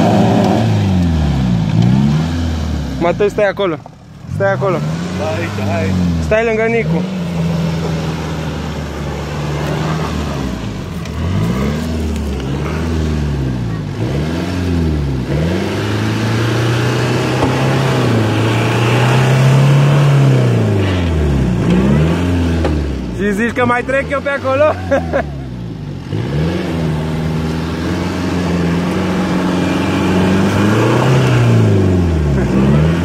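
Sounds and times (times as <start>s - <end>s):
engine revving: 0.0s - 33.0s.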